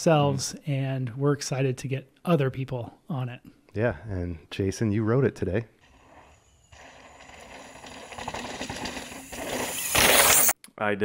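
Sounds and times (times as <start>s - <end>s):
bike tyres crunching through sand: 5.9s - 10.5s
small bike rattles: 6.1s - 10.5s.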